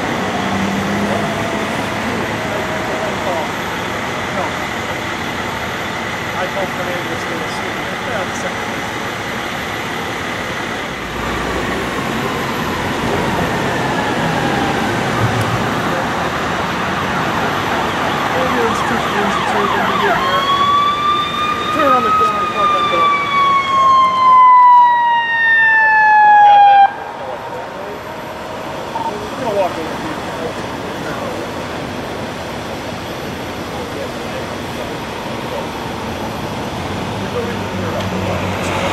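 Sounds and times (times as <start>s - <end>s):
siren wailing: 0.0s - 3.7s, 12.2s - 29.3s
steady rush of noise: 0.0s - 24.3s, 26.8s - 38.9s.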